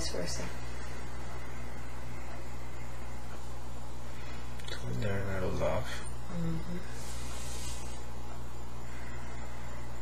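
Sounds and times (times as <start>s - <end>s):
faint hiss: 0.0s - 10.0s
low background hum: 0.0s - 10.0s.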